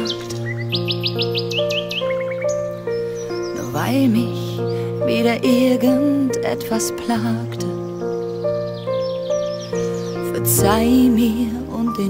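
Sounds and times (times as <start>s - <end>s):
bird chirping: 0.0s - 12.0s.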